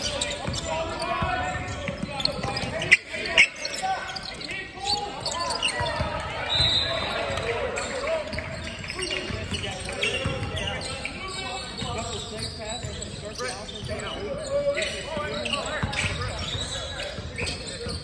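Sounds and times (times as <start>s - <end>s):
crowd voices: 0.0s - 18.0s
sneakers squeaking: 0.0s - 18.0s.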